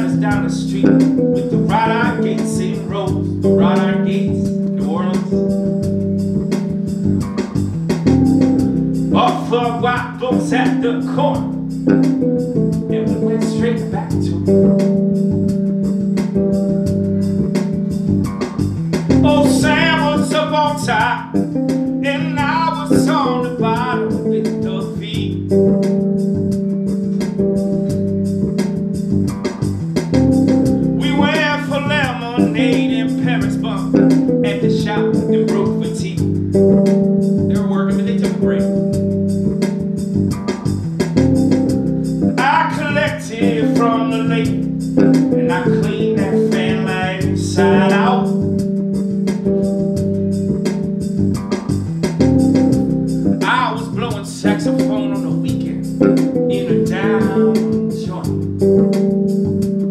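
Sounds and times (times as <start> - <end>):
man singing wavering phrases: 0.0 - 5.4, 9.1 - 11.5, 12.9 - 14.5, 19.2 - 21.4, 22.0 - 25.4, 31.0 - 36.3, 37.5 - 38.8, 42.4 - 44.6, 45.4 - 48.4, 53.4 - 55.9, 56.5 - 58.4
electric bass guitar line: 0.0 - 59.9.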